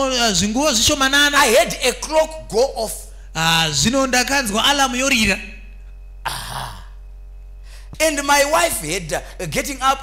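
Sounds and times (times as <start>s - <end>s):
low electrical hum: 0.0s - 10.0s
man clearing his throat: 6.2s - 7.0s.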